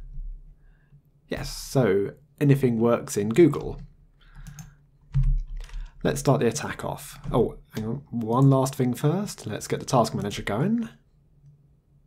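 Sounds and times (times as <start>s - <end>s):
typing on a keyboard: 3.6s - 5.9s.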